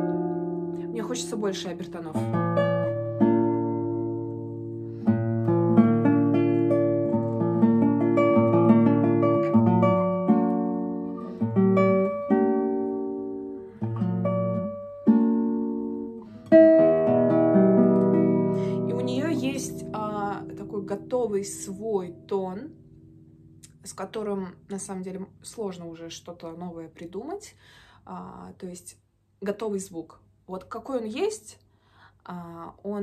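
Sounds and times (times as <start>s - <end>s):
classical guitar fingerstyle: 0.0s - 26.5s.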